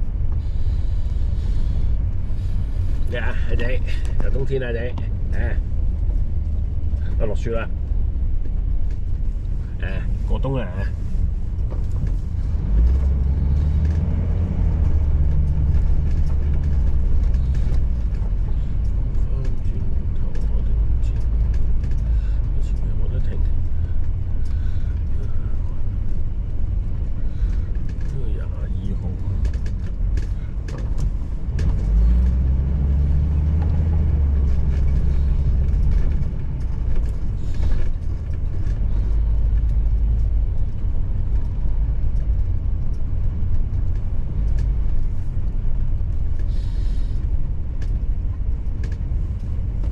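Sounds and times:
engine and tyre rumble: 0.0 - 49.9.

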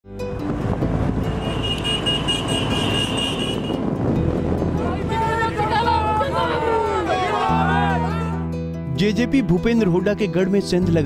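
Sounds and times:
motorcycle engines rumbling: 0.5 - 5.8.

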